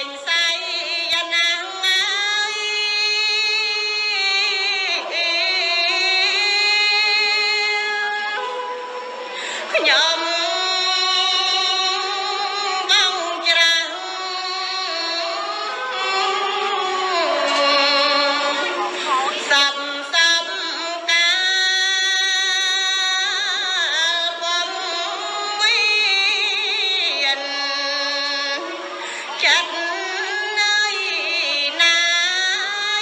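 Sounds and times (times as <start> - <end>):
woman chanting into microphone: 0.0 - 8.7, 9.6 - 33.0.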